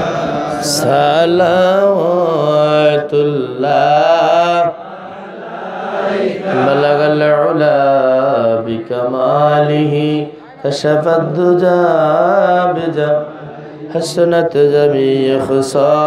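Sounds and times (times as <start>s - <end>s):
man chanting: 0.0s - 4.8s, 6.4s - 16.0s.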